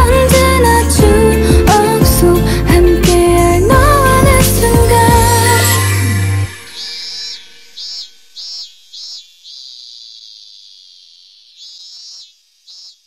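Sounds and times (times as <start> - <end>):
insect chirping: 5.6 - 13.0.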